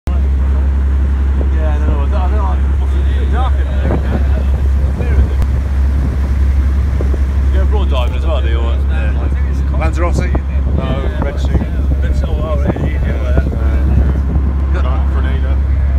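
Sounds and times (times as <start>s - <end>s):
boat engine drone: 0.1s - 15.9s
people talking: 0.1s - 15.9s
water rushing past hull: 0.2s - 15.9s.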